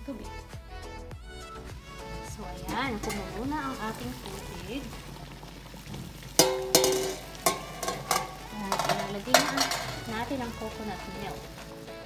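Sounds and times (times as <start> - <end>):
water boiling in a pot: 1.3 - 12.0
plucked-string music: 1.5 - 4.8, 6.4 - 12.0.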